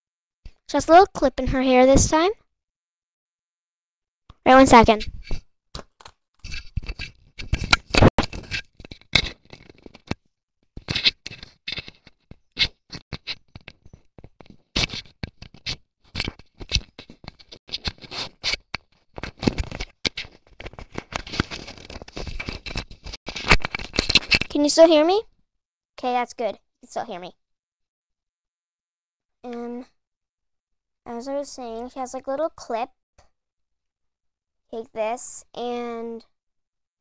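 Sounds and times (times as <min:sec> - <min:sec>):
small cable clicks: 0:05.0 - 0:10.2
microphone handling scratching: 0:06.4 - 0:10.2, 0:10.8 - 0:24.6.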